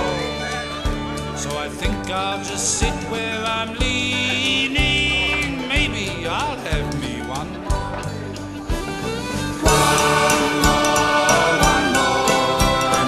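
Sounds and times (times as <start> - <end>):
person singing: 0.0 - 7.8, 9.6 - 13.0
band playing country song: 0.0 - 13.0.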